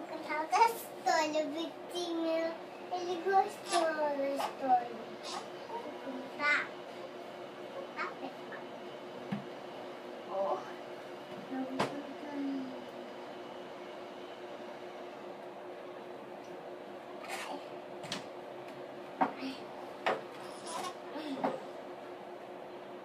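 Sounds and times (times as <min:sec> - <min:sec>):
steady low hum: 0:00.0 - 0:23.0
child vocal sounds: 0:01.4 - 0:04.7.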